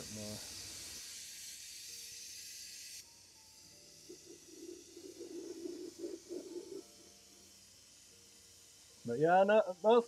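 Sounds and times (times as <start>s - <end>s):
airbrush spraying hiss: 0.0s - 10.0s.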